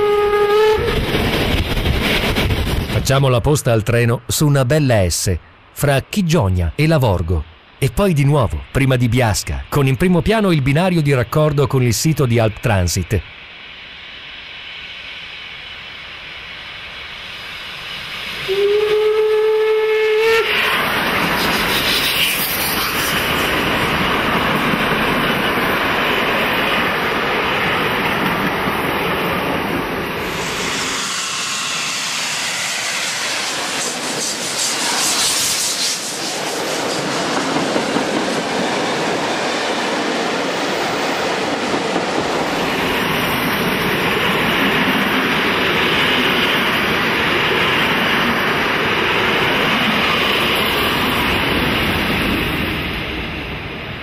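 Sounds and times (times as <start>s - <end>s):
train whistle: 0.0s - 1.1s, 18.4s - 20.7s
steam locomotive running: 0.0s - 3.0s, 13.3s - 54.0s.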